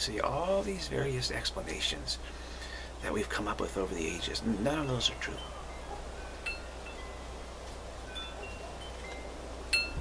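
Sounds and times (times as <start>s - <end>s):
chimes ringing: 4.7s - 7.4s, 8.0s - 10.0s.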